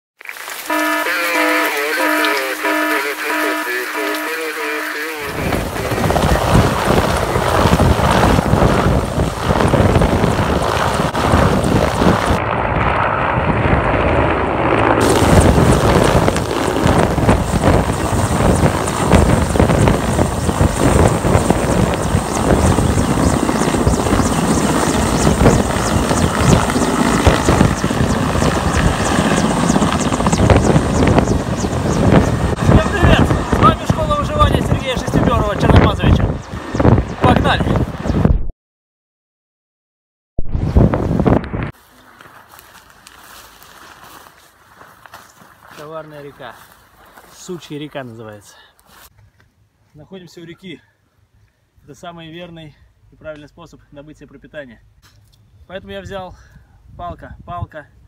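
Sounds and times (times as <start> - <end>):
helicopter passing overhead: 0.7 - 38.2.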